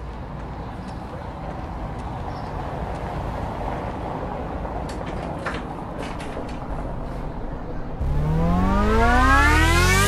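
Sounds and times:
loud tone rising in pitch: 8.0s - 10.0s.

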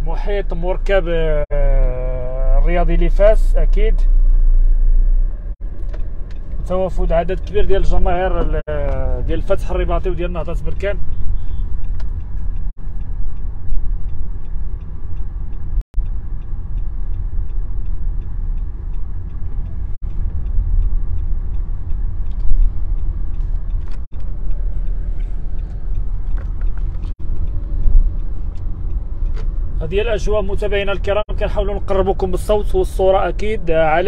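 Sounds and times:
road traffic rumble: 0.0s - 34.0s.

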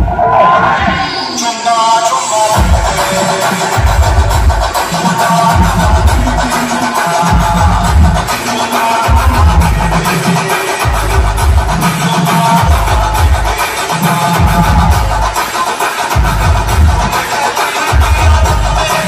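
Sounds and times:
electronic dance music: 0.0s - 19.0s.

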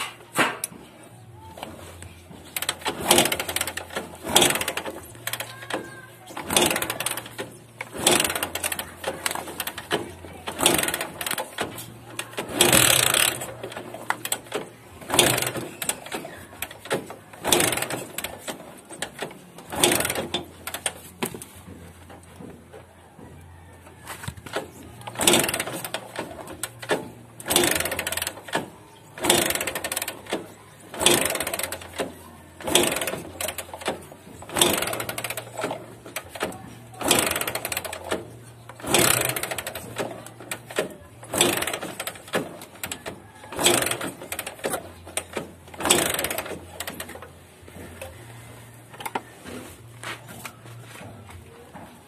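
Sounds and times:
motorcycle engine kick-started: 0.0s - 52.0s.

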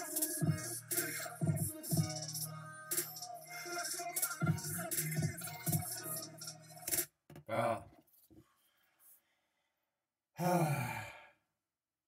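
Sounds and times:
rap music: 0.0s - 7.1s
man sighing: 7.5s - 7.8s, 10.4s - 11.4s
man's short vocal sound: 7.5s - 7.9s.

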